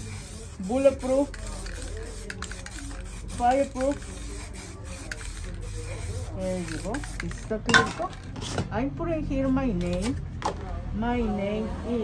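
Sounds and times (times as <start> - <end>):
aerosol can spraying: 0.0 - 7.6.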